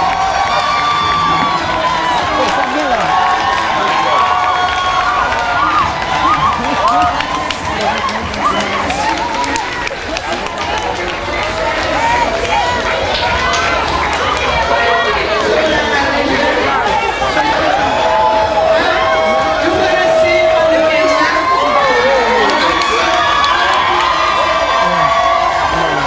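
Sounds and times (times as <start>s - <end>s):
crowd talking and cheering: 0.0s - 26.0s.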